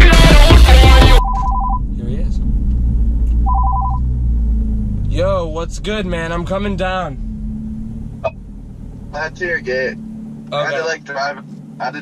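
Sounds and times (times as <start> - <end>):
car cabin rumble: 0.0 - 12.0
phone ringing two-tone trill: 1.2 - 1.8, 3.5 - 4.0.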